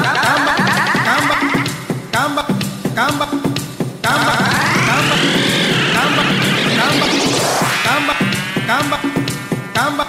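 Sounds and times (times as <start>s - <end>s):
tech house music: 4.0s - 10.0s
pitched sweep effect: 4.1s - 10.0s.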